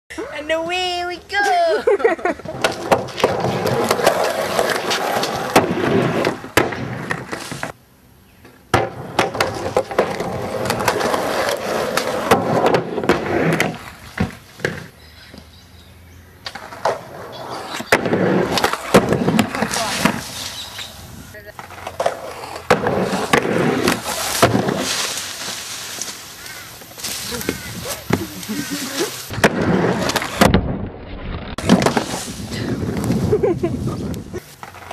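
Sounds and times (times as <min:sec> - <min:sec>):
skateboard wheels rolling: 0:00.6 - 0:07.8, 0:08.4 - 0:15.6, 0:16.4 - 0:34.9
skateboard clacks and thuds: 0:02.4 - 0:07.8, 0:08.7 - 0:14.9, 0:16.4 - 0:20.2, 0:21.6 - 0:24.9, 0:29.3 - 0:30.8, 0:31.6 - 0:32.2.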